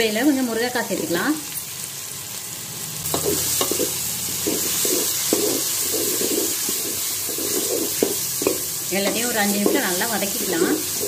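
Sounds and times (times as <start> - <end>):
food sizzling in oil: 0.0 - 11.0
wooden spatula scraping pot: 3.2 - 10.0
spatula tapping pot: 3.2 - 10.8.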